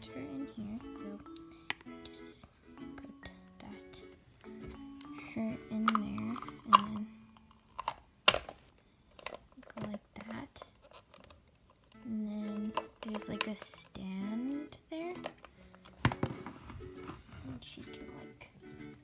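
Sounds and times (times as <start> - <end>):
plastic packaging clicking: 5.8 - 12.0, 12.7 - 13.9.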